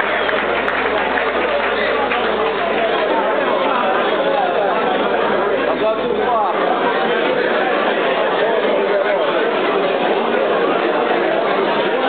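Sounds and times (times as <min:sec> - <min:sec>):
hubbub of overlapping conversation: 0:00.0 - 0:12.0.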